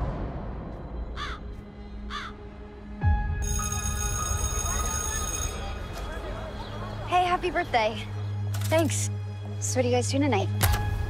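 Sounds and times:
deep boom: 0:00.0 - 0:01.2
bird cawing: 0:01.1 - 0:02.5
music with bell-like tones: 0:03.3 - 0:09.1.

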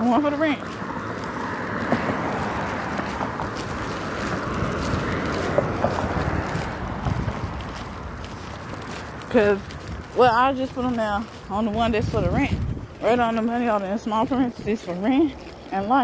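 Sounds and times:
road traffic passing: 0:00.0 - 0:16.0
tyre and engine noise: 0:00.0 - 0:16.0.

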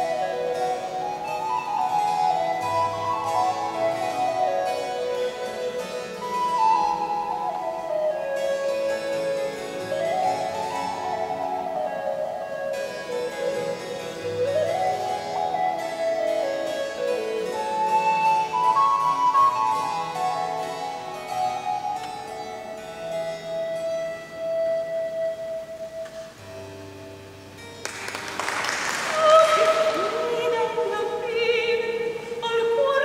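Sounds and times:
flute melody: 0:00.0 - 0:27.2, 0:28.0 - 0:33.0
harpsichord: 0:00.0 - 0:31.3
soprano singing: 0:28.9 - 0:33.0.

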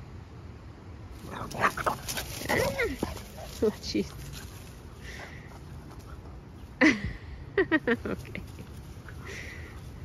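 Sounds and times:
dogs growling and yipping: 0:01.2 - 0:03.6.

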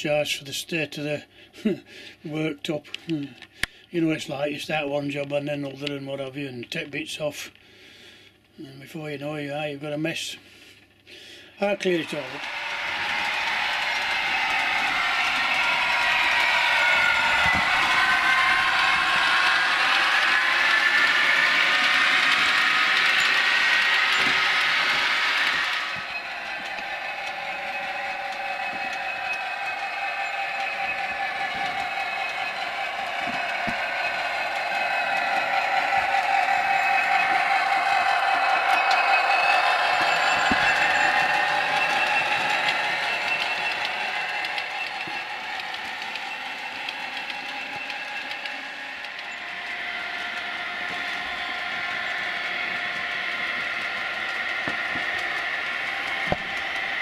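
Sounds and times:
model trains running: 0:00.0 - 0:07.6, 0:11.2 - 0:57.0.

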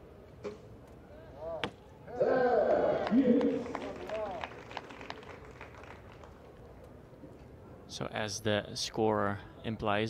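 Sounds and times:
loud voices calling out: 0:02.1 - 0:04.3.

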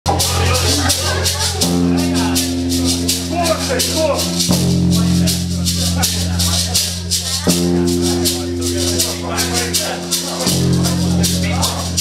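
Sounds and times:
hissing cymbal strokes: 0:00.1 - 0:12.0
man talking: 0:00.1 - 0:12.0
rock band playing: 0:07.4 - 0:12.0.

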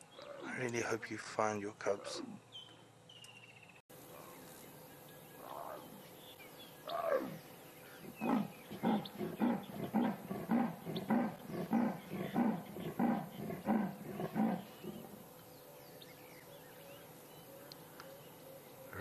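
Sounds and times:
leopard rasping call: 0:06.8 - 0:07.4, 0:08.0 - 0:15.2
leopard moaning: 0:08.0 - 0:15.2.

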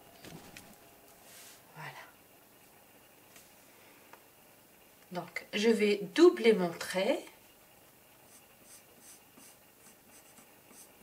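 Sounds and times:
pencil scratching on paper: 0:08.3 - 0:11.0.

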